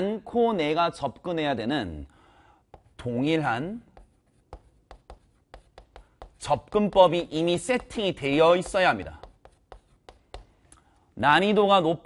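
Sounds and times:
chalk tapping and scratching: 2.6 - 10.8.

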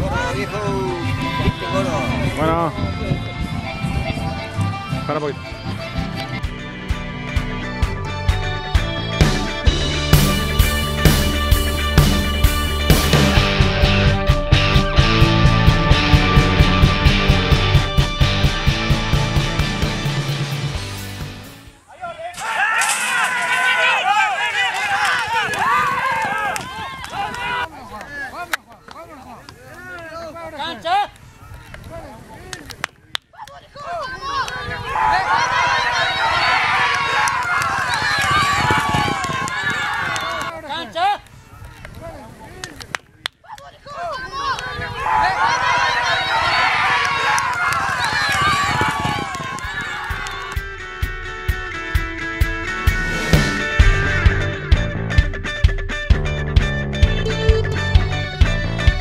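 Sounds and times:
crowd shouting and cheering: 0.0 - 32.8, 33.4 - 59.0
sharp crack: 22.3 - 24.0, 31.1 - 33.6, 41.2 - 43.7.

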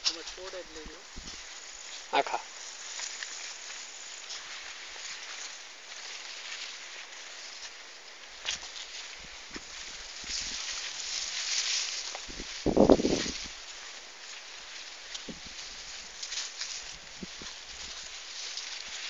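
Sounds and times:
leafy plants rustling: 0.0 - 19.0
steady outdoor hiss: 0.0 - 19.0.

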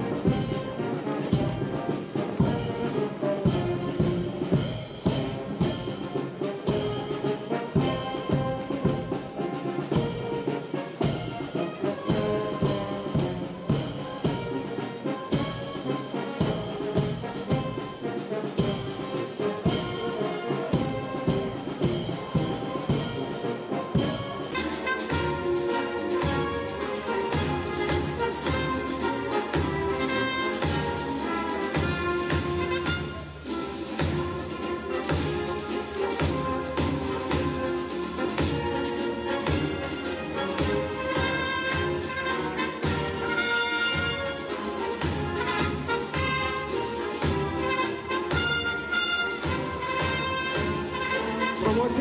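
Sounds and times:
brass band playing a march: 0.0 - 52.0.

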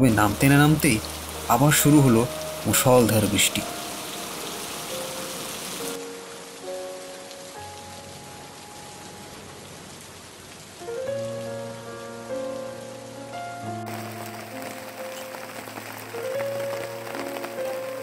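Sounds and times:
soft background music: 0.0 - 18.0
steady rain falling: 0.0 - 18.0.

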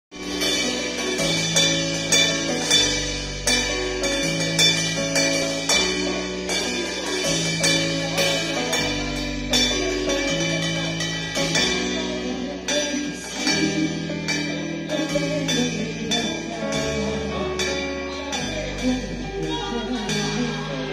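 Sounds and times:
keyboard bass and chords: 0.1 - 20.9.

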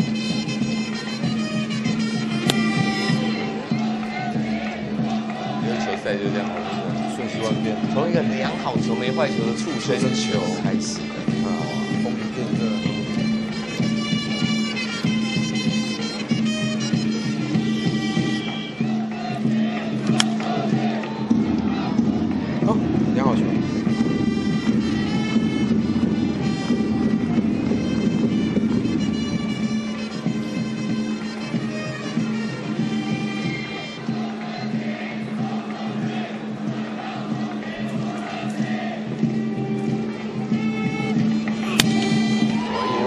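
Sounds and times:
horns playing cheer tune: 0.0 - 43.0
crowd chanting: 1.7 - 28.7, 31.1 - 43.0
sharp bat crack: 2.4 - 3.0, 41.6 - 42.2.

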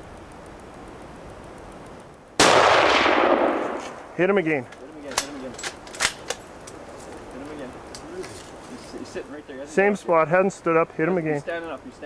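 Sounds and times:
rifle shot with echo: 2.4 - 4.2.

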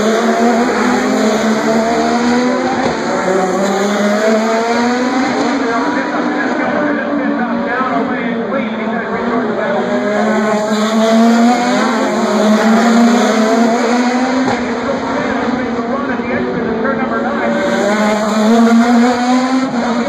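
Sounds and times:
race car engines droning: 0.0 - 20.0
people talking: 0.1 - 4.5, 5.1 - 20.0.

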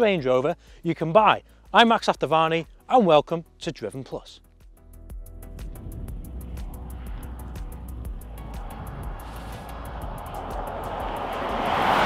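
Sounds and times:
music with ticking beat: 4.5 - 12.0
car approaching on road: 5.6 - 12.0.

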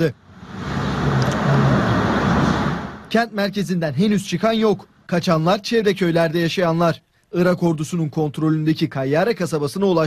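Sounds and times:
vehicle driving past: 0.1 - 3.1.

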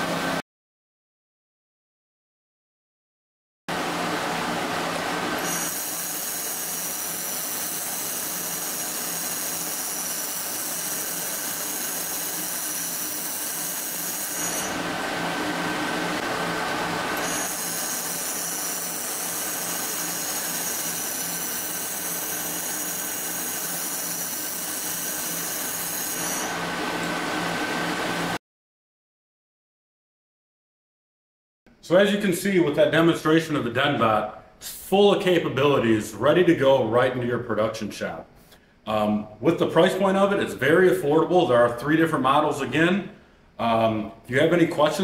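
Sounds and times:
welding machine hum and hiss: 3.7 - 28.4.

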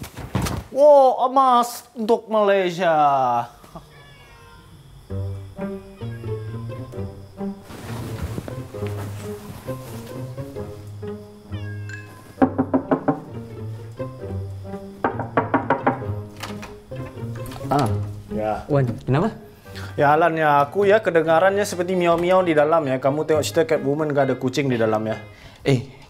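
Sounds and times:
cat meowing: 3.5 - 7.2, 11.5 - 12.4.

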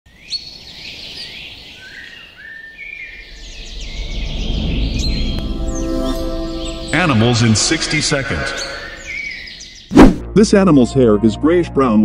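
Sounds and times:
birds chirping: 0.1 - 10.0
low rumble: 3.1 - 8.2
held music chord: 3.3 - 9.7.

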